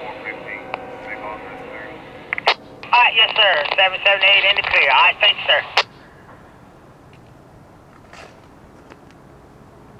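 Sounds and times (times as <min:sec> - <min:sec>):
radio click: 0:02.3 - 0:05.9
faint radio voice: 0:02.9 - 0:05.8.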